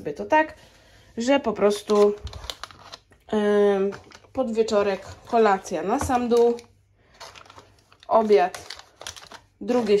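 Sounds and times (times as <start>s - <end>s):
plastic wrapping crinkling: 1.6s - 10.0s.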